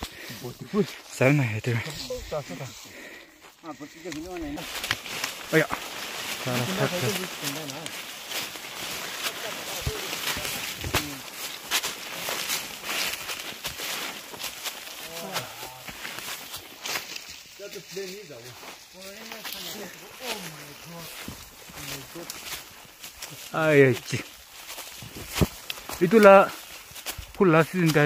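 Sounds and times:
footsteps on leaf litter: 0.0s - 28.0s
leaves and twigs crackling: 0.0s - 28.0s
people talking: 0.4s - 2.8s, 6.4s - 8.0s, 9.2s - 11.3s, 15.0s - 15.9s, 17.6s - 21.2s, 27.4s - 28.0s.

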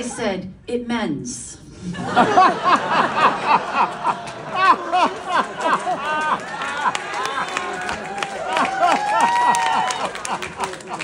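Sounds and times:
audience laughing: 1.8s - 11.0s
scattered claps: 4.2s - 11.0s.

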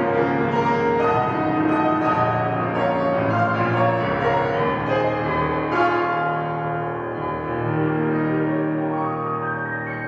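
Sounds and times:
piano chords ringing: 0.0s - 10.0s.

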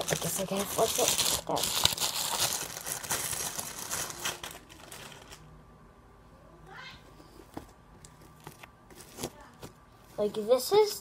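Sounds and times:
plastic bag crinkling: 0.0s - 5.5s.

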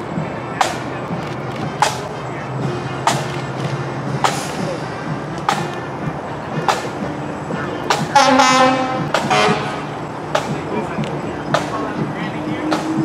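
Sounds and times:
drum beating marching cadence: 0.0s - 13.0s
loud horn blast: 8.1s - 10.0s.

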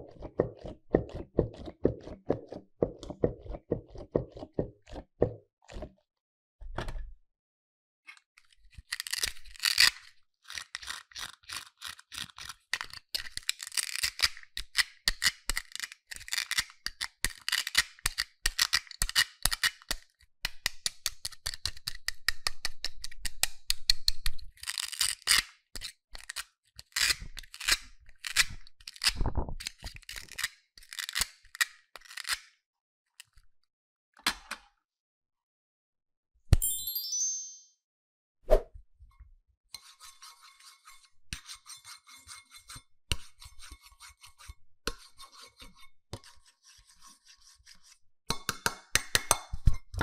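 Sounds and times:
plastic toy handling: 8.1s - 14.3s, 26.2s - 32.4s.

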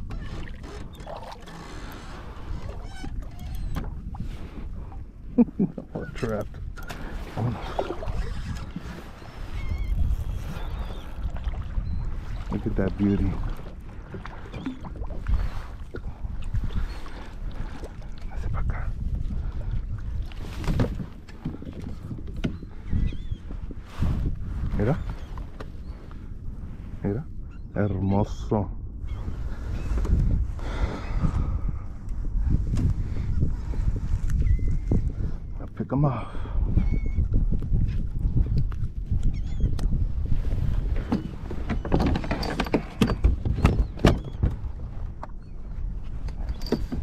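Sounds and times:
wind buffeting microphone: 0.0s - 47.0s
water splashing: 7.0s - 9.6s.

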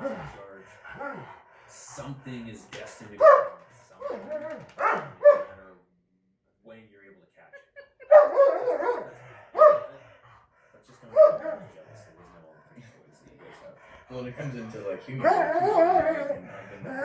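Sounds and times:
dog barking: 3.2s - 4.2s, 4.8s - 5.6s, 8.0s - 9.9s, 11.1s - 11.6s.

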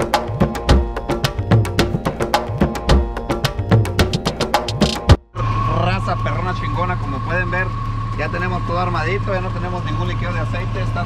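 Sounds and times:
background music: 0.0s - 5.3s
truck engine idling: 0.0s - 11.0s.

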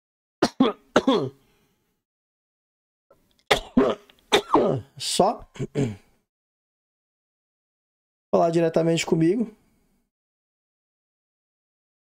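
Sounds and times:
man coughing: 0.4s - 1.4s, 3.5s - 4.9s, 5.5s - 6.1s.

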